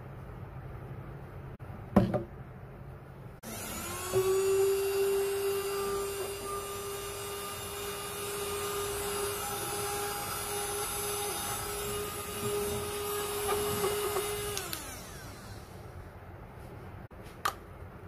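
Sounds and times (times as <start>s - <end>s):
mini vacuum cleaner motor whine: 3.4s - 15.8s.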